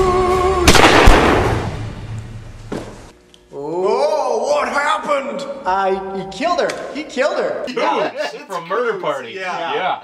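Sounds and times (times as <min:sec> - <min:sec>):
loud pistol shot: 0:00.7 - 0:01.9.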